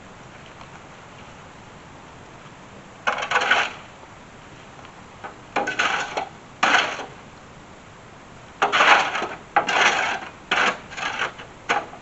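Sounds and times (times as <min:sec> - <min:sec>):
metal tool striking ground: 0:05.6 - 0:07.1, 0:08.6 - 0:12.0.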